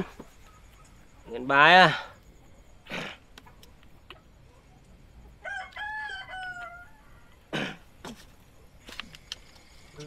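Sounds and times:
rooster crowing: 5.3 - 7.5.

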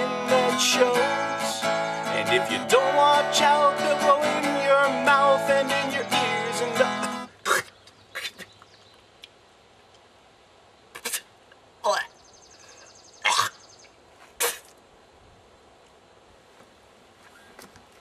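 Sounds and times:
man's wordless vocal noises: 0.0 - 8.5, 11.0 - 12.2.

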